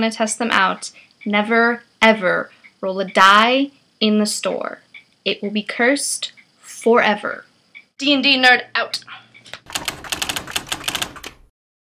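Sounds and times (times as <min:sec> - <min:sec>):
typewriter keys clacking: 0:09.6 - 0:11.5.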